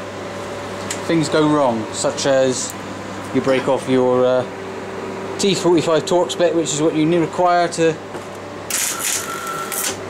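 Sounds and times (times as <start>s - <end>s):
steady low hum: 0.0s - 10.0s
welder arc crackling and buzzing: 0.4s - 6.8s, 7.5s - 10.0s.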